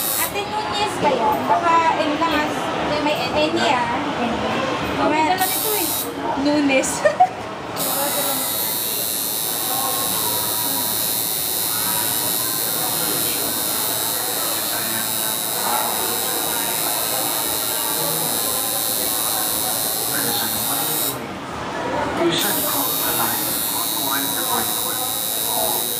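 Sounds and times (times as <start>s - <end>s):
tattoo machine buzzing: 0.0s - 0.4s, 5.4s - 6.1s, 7.8s - 21.2s, 22.4s - 25.9s.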